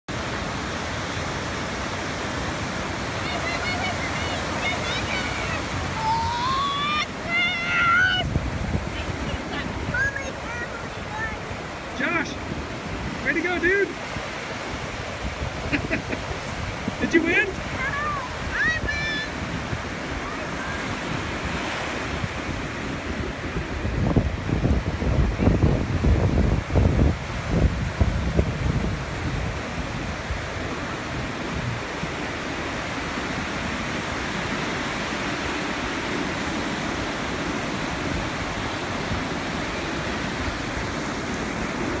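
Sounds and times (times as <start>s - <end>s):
ocean surf breaking: 0.1s - 42.0s
wind buffeting microphone: 0.2s - 42.0s.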